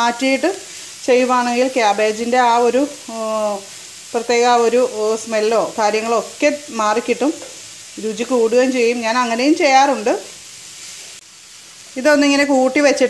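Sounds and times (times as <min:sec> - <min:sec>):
cabbage sizzling in a pan: 0:00.0 - 0:13.0.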